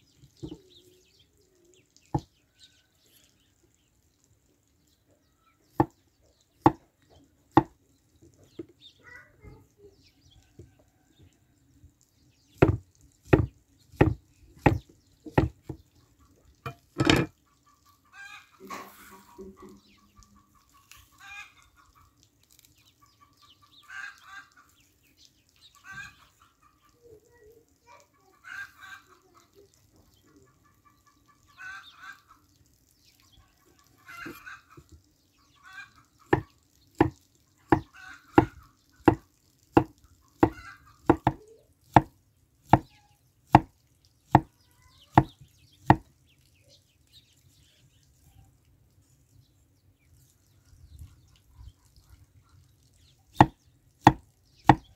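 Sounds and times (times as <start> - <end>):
knife knocking on wooden board: 2.1 - 2.3, 12.6 - 15.8, 16.7 - 17.3, 36.3 - 38.5, 39.8 - 42.1
chickens clucking: 14.6 - 22.3, 23.0 - 24.8, 25.7 - 27.2, 27.9 - 32.6, 33.2 - 42.1.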